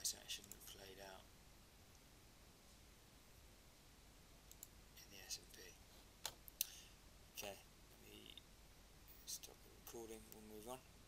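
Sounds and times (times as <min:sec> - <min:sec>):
faint clicks: 0:04.5 - 0:04.8.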